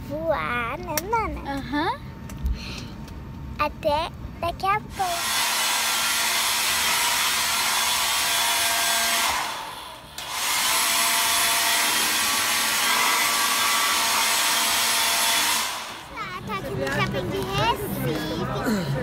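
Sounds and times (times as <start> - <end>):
hair dryer blowing: 5.0 - 16.1.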